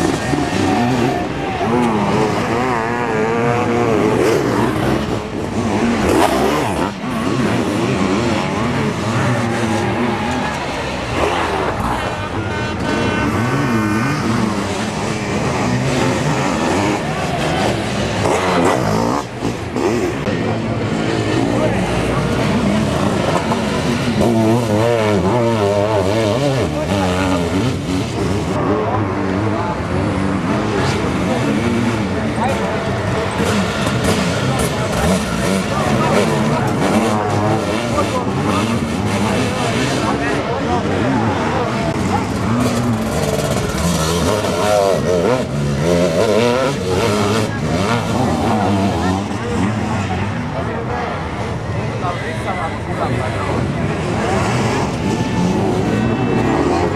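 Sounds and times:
motorcycle engines racing: 0.0s - 56.9s.

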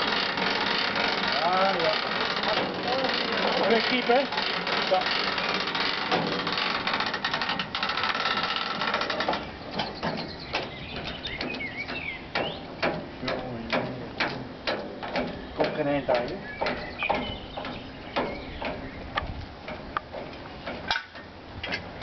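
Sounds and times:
hand winch ratchet clicking: 0.0s - 22.0s.

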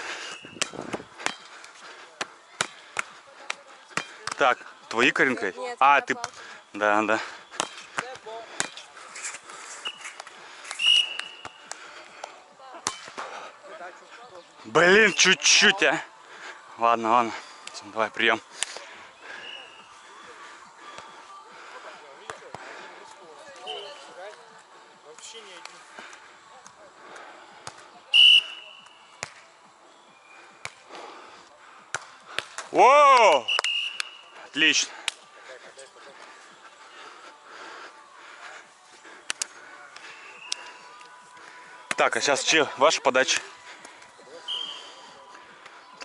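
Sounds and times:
hands slapping volleyball: 0.6s - 5.0s, 7.5s - 8.8s, 10.0s - 13.3s, 29.2s - 29.4s, 30.6s - 30.9s, 31.9s - 34.1s, 35.0s - 35.2s, 39.2s - 41.1s, 41.9s - 42.1s
player shouting: 32.8s - 33.5s.

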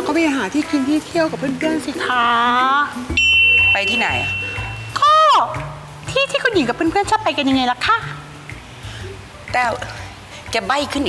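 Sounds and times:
steady high electronic tone: 3.2s - 5.0s.

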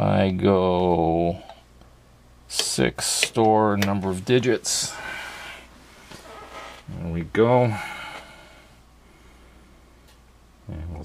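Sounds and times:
man talking: 0.0s - 1.5s, 2.5s - 5.1s, 6.9s - 8.0s, 10.7s - 11.0s
low equipment hum: 0.0s - 11.0s.

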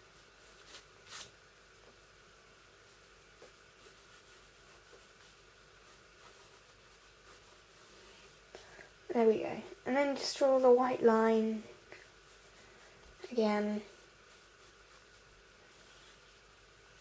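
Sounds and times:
pencil scratching on paper: 2.9s - 8.3s, 12.0s - 16.4s.

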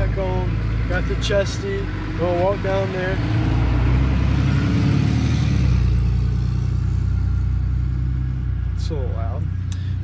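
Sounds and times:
pickup truck engine rumbling past: 0.0s - 8.8s.

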